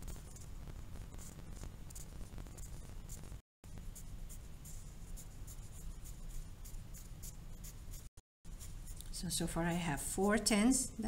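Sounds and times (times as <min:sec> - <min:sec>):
pencil scratching on paper: 0:00.0 - 0:09.2.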